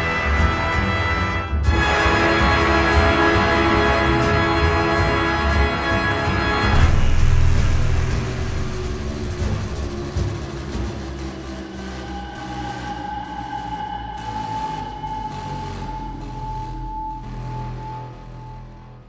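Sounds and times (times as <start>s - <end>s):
dark suspenseful music: 0.0s - 19.0s.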